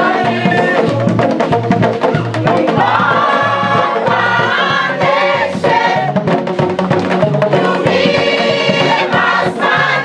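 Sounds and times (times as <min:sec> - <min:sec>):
choir singing in harmony: 0:00.0 - 0:01.4, 0:02.4 - 0:06.4, 0:07.4 - 0:10.0.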